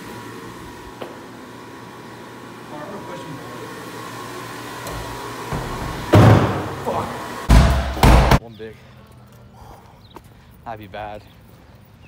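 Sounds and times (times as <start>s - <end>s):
loud rushing knock: 5.5s - 6.8s, 7.5s - 8.4s.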